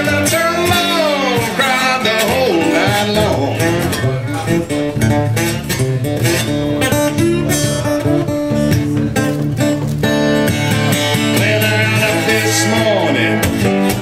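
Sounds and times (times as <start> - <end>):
slide guitar blues: 0.0 - 14.0.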